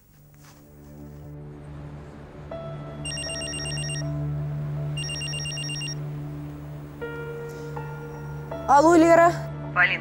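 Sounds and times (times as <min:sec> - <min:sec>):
mobile phone ringing: 0:03.0 - 0:04.1, 0:05.0 - 0:06.0.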